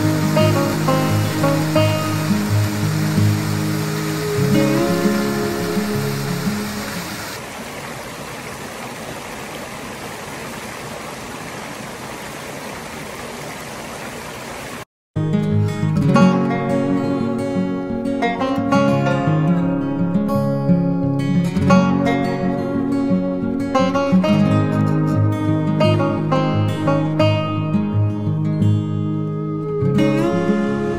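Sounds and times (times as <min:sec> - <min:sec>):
acoustic guitar music: 0:00.0 - 0:07.2, 0:15.2 - 0:30.9
waterfall and stream rushing: 0:00.0 - 0:14.9.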